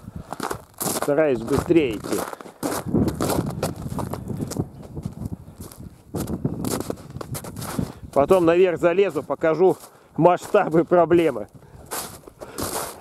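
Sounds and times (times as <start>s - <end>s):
footsteps crunching in snow and hay: 0.1s - 13.0s.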